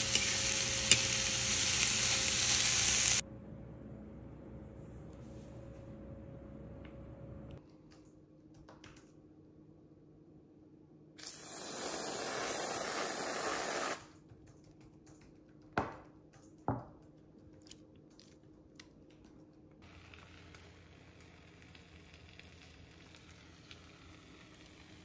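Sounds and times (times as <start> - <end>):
aerosol can spraying: 11.2 - 14.0.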